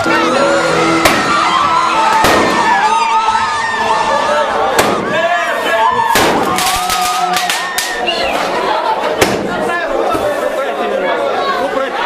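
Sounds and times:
people shouting: 0.0s - 9.5s
fireworks bangs: 1.0s - 3.0s, 4.7s - 5.4s, 6.0s - 8.0s.

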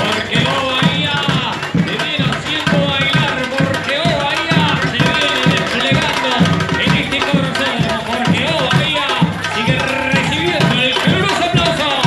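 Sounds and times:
carnival drum section: 0.0s - 12.0s
person singing: 0.0s - 12.0s.

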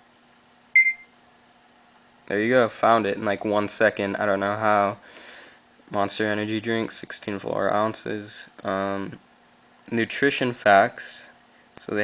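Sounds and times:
short electronic beep: 0.8s - 1.1s.

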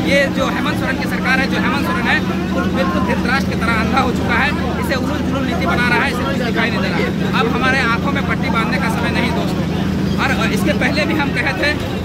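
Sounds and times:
bus engine droning: 0.0s - 12.0s
man speaking: 0.0s - 12.0s.

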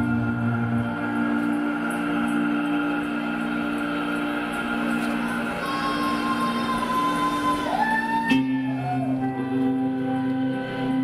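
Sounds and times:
live music sustained chord: 0.0s - 11.0s.

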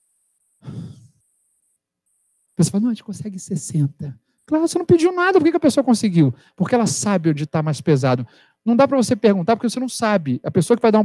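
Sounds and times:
man's breathy sigh: 0.6s - 1.2s.

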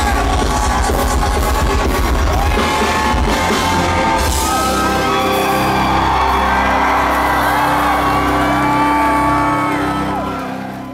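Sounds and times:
live symphonic metal band: 0.0s - 10.7s
crowd whooping and shouting: 0.0s - 10.9s.

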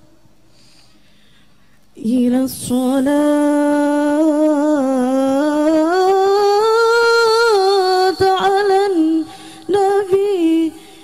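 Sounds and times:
woman singing unaccompanied: 2.0s - 11.0s.

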